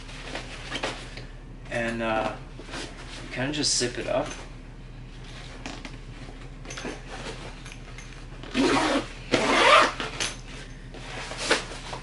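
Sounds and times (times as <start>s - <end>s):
backpack zipper being pulled shut: 8.5s - 10.1s.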